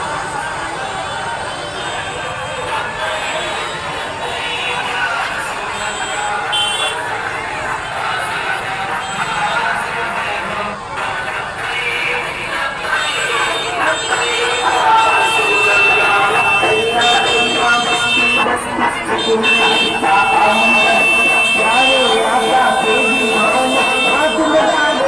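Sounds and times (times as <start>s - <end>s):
amplified voice with music: 0.0s - 25.0s
crowd: 0.0s - 25.0s.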